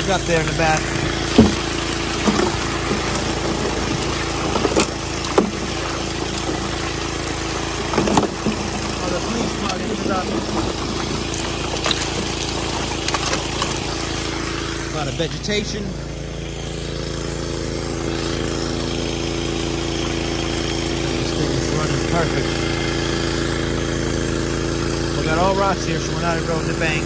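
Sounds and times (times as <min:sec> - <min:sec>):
rocks and gravel knocking: 0:00.0 - 0:15.2
small gas engine running: 0:00.0 - 0:27.0
water rushing through sluice box: 0:00.0 - 0:27.0.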